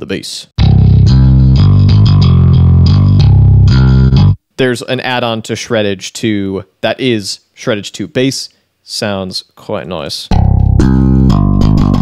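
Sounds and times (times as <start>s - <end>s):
distorted bass guitar riff: 0.6s - 4.4s, 10.3s - 12.0s.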